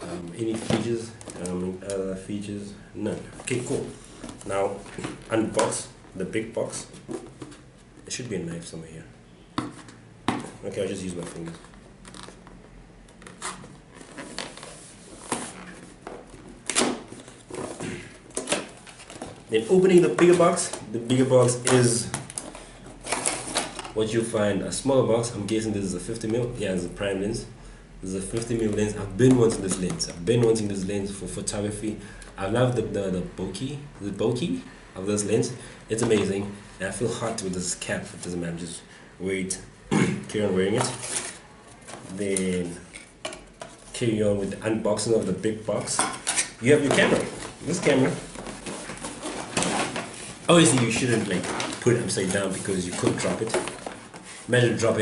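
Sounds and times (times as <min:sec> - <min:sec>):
cardboard scraping and rustling: 0:00.0 - 0:01.6, 0:13.3 - 0:20.8, 0:40.6 - 0:42.9, 0:45.8 - 0:54.9
cardboard packaging rustling: 0:45.7 - 0:55.0.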